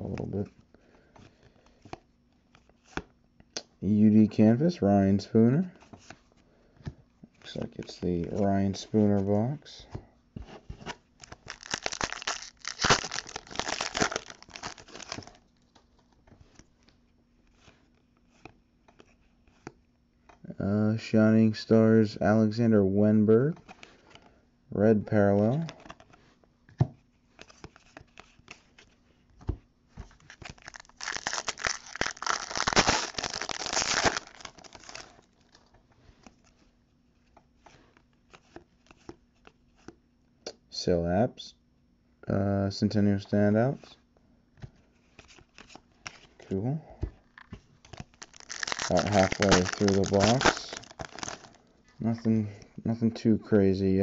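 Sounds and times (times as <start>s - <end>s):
foil wrapper tearing and crinkling: 11.3s - 15.4s, 30.4s - 35.2s, 48.0s - 51.6s.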